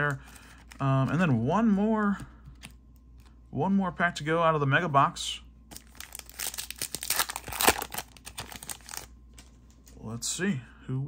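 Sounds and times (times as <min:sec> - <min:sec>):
foil wrapper tearing and crinkling: 0:05.7 - 0:09.1.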